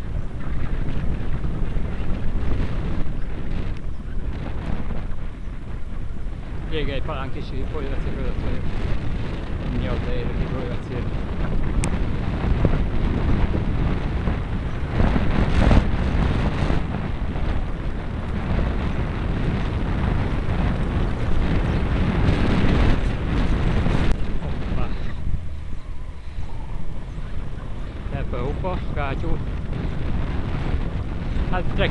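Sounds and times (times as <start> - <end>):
bicycle tyres on asphalt: 0.0 - 31.9
wind rushing over microphone: 0.0 - 31.9.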